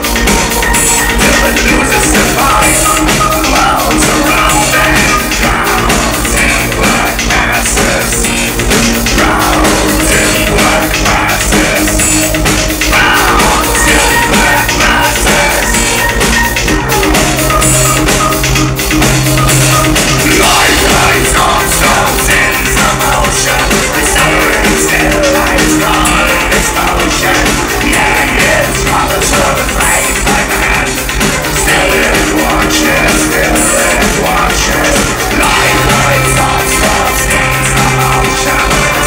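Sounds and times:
live electronic band music: 0.0 - 39.0.

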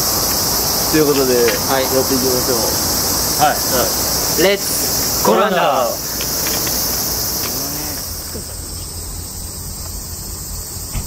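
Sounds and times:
crickets and insects chorus: 0.0 - 11.0.

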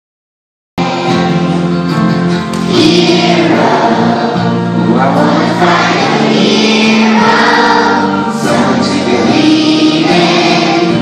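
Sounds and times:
children's choir singing: 0.8 - 11.0.

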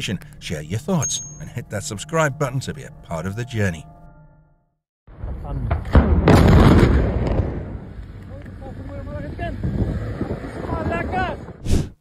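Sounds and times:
explosion with rolling rumble: 5.1 - 8.2.

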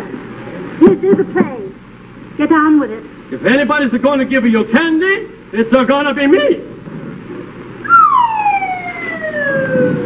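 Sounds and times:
falling whistle: 7.8 - 10.0.

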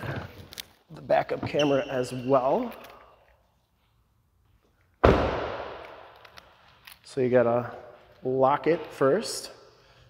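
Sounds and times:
car door slamming: 5.0 - 5.6.

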